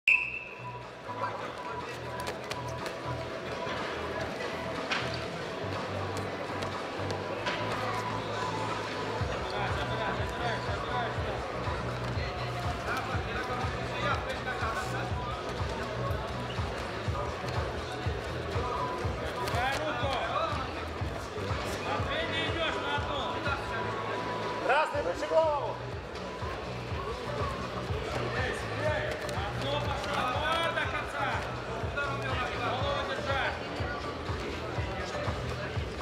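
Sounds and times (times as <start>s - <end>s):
referee's whistle blast: 0.0s - 0.8s
background music: 0.1s - 36.0s.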